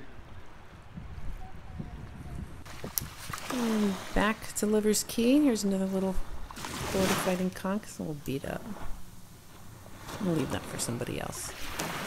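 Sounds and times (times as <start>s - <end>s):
wind rumbling on microphone: 0.0s - 4.2s.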